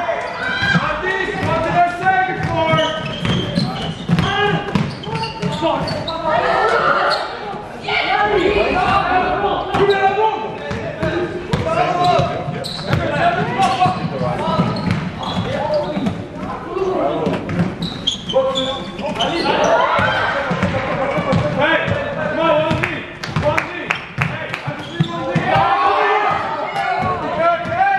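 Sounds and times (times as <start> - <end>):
voices of players and spectators: 0.0 - 27.9
basketball bouncing on court floor: 2.4 - 6.0, 10.6 - 16.2, 20.0 - 22.1, 22.7 - 23.6.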